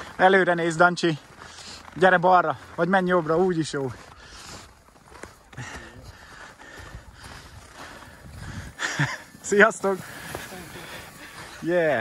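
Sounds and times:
footsteps on packed snow: 0:00.0 - 0:12.0
person breathing: 0:01.4 - 0:01.9, 0:05.5 - 0:09.0, 0:09.9 - 0:11.6.

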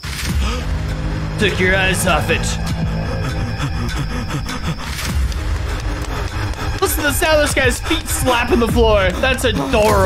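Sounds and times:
low sustained background music: 0:00.0 - 0:10.0.

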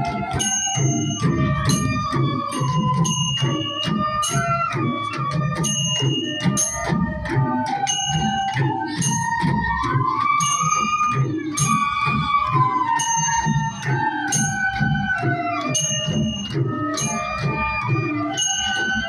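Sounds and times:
bamboo flute melody: 0:00.0 - 0:19.0
drums beating steady rhythm: 0:00.0 - 0:19.0
bell-like ringing strikes: 0:00.4 - 0:04.8, 0:05.5 - 0:07.2, 0:07.9 - 0:09.6, 0:10.4 - 0:12.0, 0:15.7 - 0:17.6, 0:18.3 - 0:19.0.

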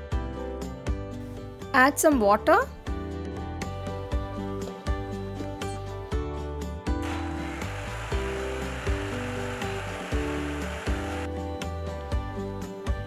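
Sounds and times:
background music with steady beat: 0:00.0 - 0:13.0
mixer grinder motor running: 0:07.0 - 0:11.3.

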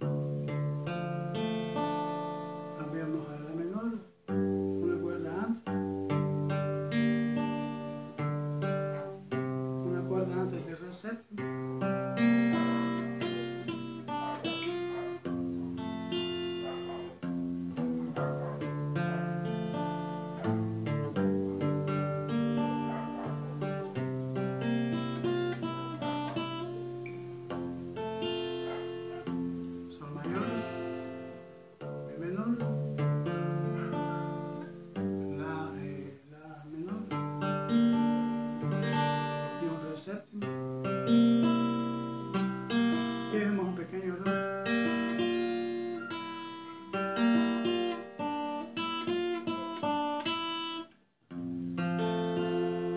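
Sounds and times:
classical guitar fingerpicking: 0:00.0 - 0:52.9.

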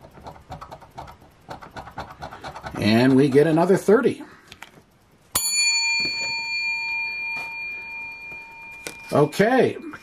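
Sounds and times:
coin ringing: 0:05.4 - 0:10.0.

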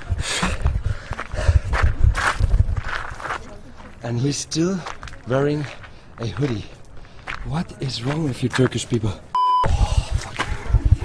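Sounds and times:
man breathing hard: 0:00.0 - 0:01.9, 0:09.7 - 0:10.7.

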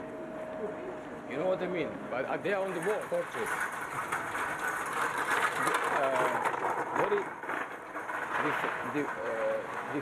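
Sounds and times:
trolley wheels rattling on paving: 0:02.2 - 0:10.0.

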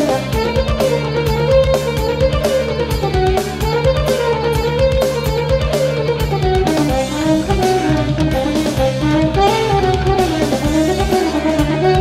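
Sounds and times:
electric guitar: 0:00.0 - 0:12.0
steady drum beat: 0:00.0 - 0:12.0.

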